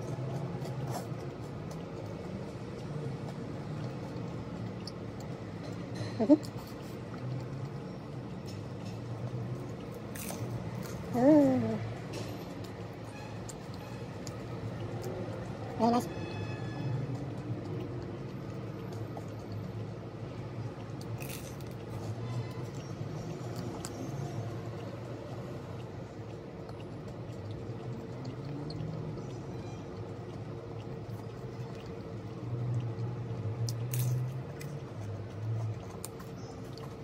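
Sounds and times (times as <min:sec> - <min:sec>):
chewing crispy food: 0:00.0 - 0:37.0.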